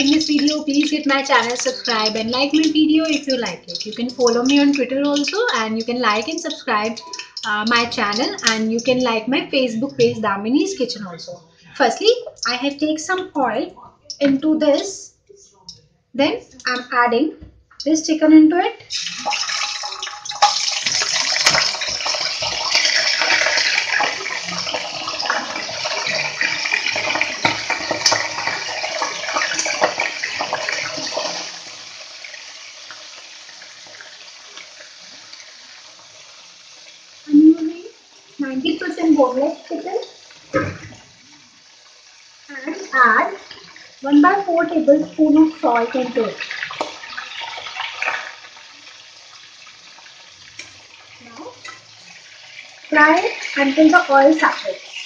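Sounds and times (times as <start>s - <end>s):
chicken sizzling in hot oil: 0.0s - 9.4s, 18.9s - 55.0s.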